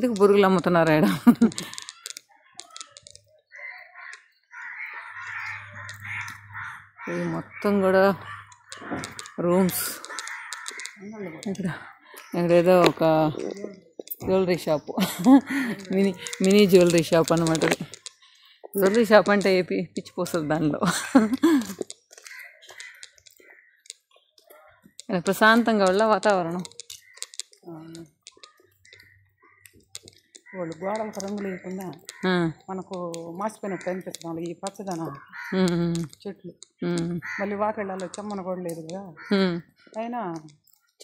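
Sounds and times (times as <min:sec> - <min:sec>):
harsh bird calls: 0:01.6 - 0:36.1, 0:37.2 - 0:40.0.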